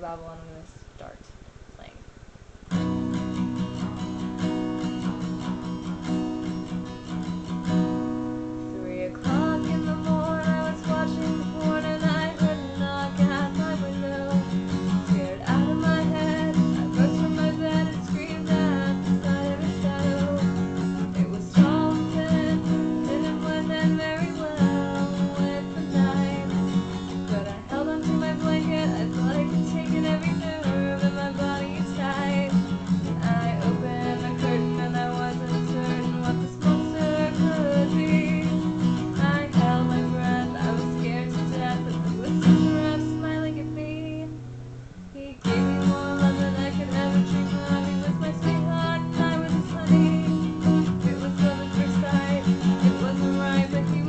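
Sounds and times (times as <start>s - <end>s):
acoustic guitar strumming: 2.7s - 54.0s
woman singing: 3.1s - 44.4s, 45.1s - 54.0s.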